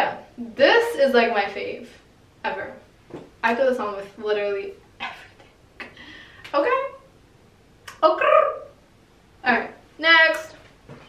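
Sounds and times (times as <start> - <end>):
woman speaking: 0.0 - 5.4, 6.5 - 7.1, 7.9 - 8.8, 9.4 - 10.6.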